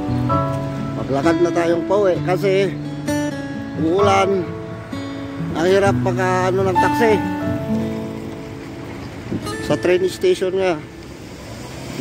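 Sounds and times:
city street traffic: 0:00.0 - 0:12.0
man speaking: 0:01.0 - 0:02.8, 0:03.8 - 0:04.5, 0:05.5 - 0:07.4, 0:09.6 - 0:10.9.

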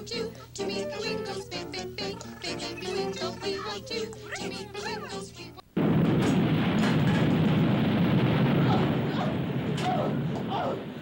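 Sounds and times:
person laughing: 0:02.8 - 0:05.3
explosion rumbling: 0:05.8 - 0:11.0.

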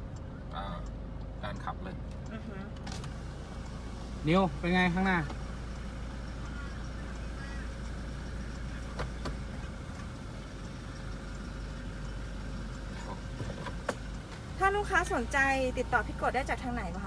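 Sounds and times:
diesel engine idling: 0:00.0 - 0:17.0.

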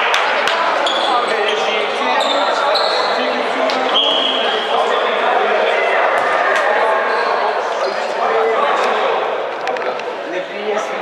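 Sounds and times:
hubbub of voices: 0:00.0 - 0:11.0.

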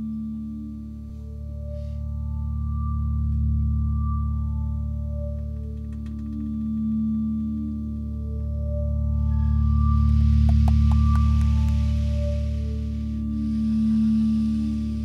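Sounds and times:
low drone: 0:00.0 - 0:15.0.

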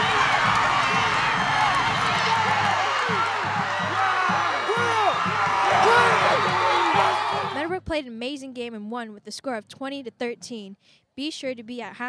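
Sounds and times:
crowd cheering and shouting: 0:00.0 - 0:07.7.

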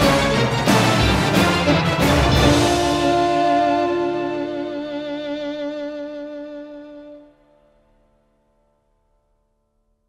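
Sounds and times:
violin note with vibrato: 0:01.7 - 0:07.4.

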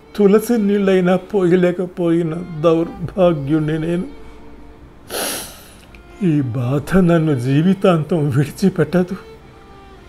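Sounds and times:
narrator speaking: 0:00.2 - 0:04.1, 0:06.2 - 0:09.3
person inhaling sharply: 0:05.0 - 0:06.0.

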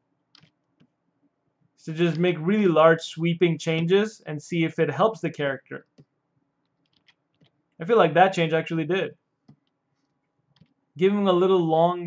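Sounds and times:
person speaking: 0:01.8 - 0:06.0, 0:07.8 - 0:09.2, 0:11.0 - 0:12.0.

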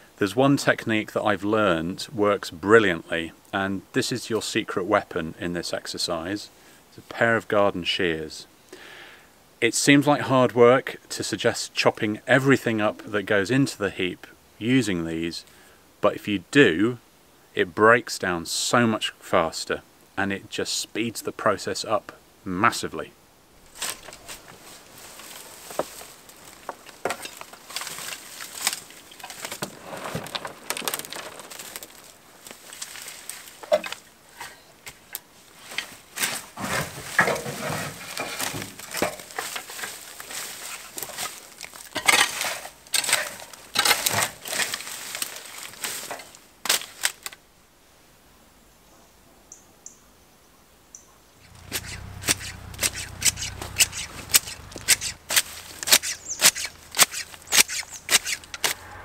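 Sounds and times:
woody cuttings rustling and crackling: 0:23.6 - 0:47.4, 0:51.4 - 0:58.9
garden shears snipping: 0:23.7 - 0:24.6, 0:51.4 - 0:58.9
sharp snaps of twigs: 0:51.4 - 0:58.8
low hum: 0:58.3 - 0:59.0.

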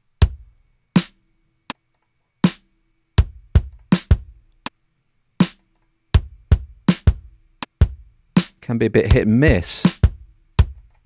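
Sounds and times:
kick drum hits: 0:03.2 - 0:04.4, 0:06.2 - 0:08.1, 0:09.1 - 0:10.8.

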